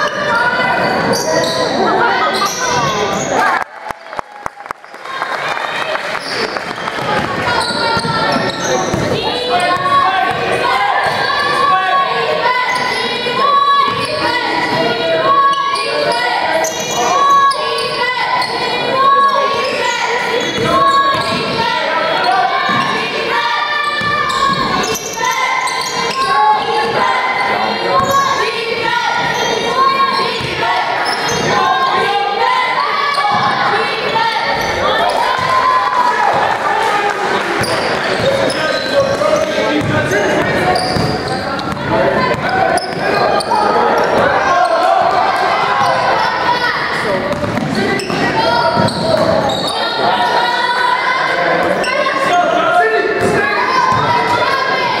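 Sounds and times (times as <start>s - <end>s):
players and spectators calling: 0.0s - 55.0s.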